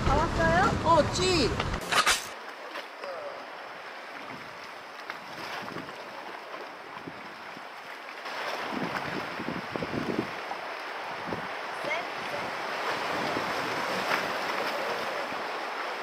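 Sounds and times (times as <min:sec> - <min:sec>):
sea on rocky shore: 0:00.0 - 0:16.0
wind: 0:00.0 - 0:16.0.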